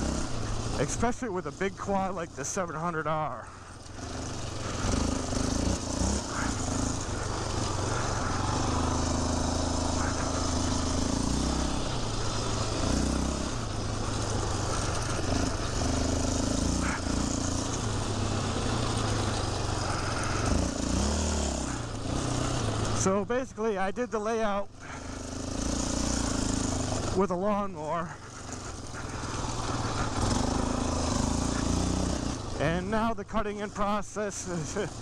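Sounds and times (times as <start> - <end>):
quad engine revving: 0.0 - 35.0.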